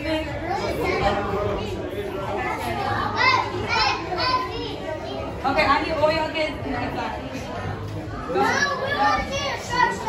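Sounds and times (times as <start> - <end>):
children's voices: 0.0 - 5.5, 8.1 - 10.0
chatter of voices: 0.0 - 10.0.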